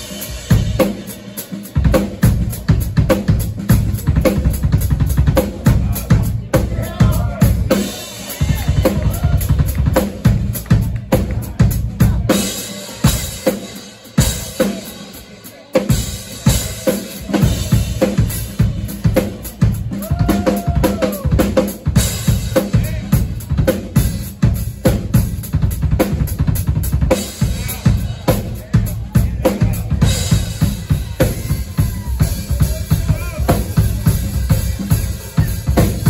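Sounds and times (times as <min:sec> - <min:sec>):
bass guitar: 0:00.0 - 0:15.0, 0:15.9 - 0:36.0
drum kit beat: 0:00.0 - 0:36.0.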